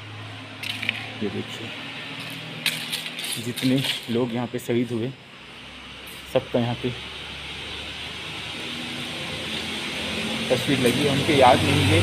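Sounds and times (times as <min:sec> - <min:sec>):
low engine hum: 0:00.0 - 0:04.0, 0:05.2 - 0:12.0.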